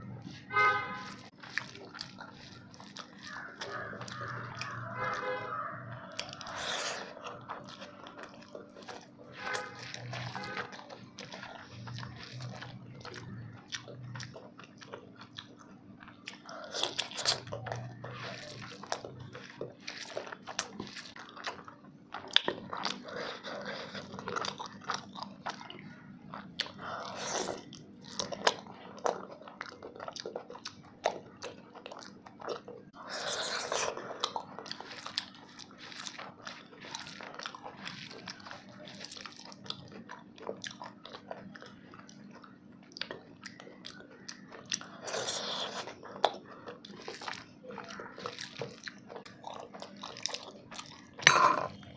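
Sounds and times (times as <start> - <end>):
food crunching: 0.0 - 51.9.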